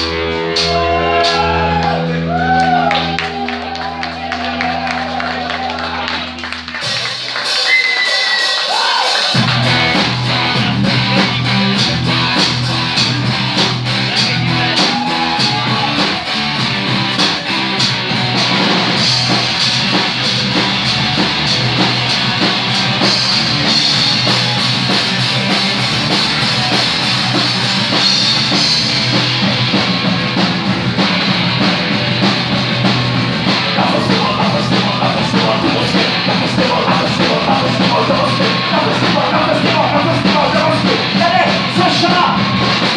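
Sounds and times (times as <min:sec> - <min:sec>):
live rock band playing: 0:00.0 - 0:42.9.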